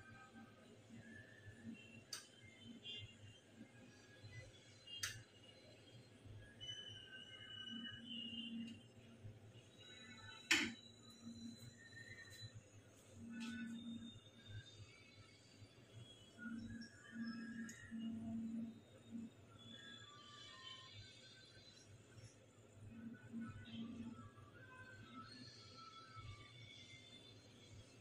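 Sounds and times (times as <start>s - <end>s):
faint background music: 0.0s - 28.0s.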